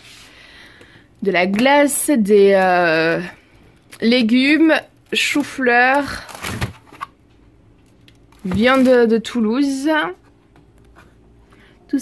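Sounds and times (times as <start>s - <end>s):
plastic packaging rustling: 1.7s - 7.2s, 7.8s - 9.4s.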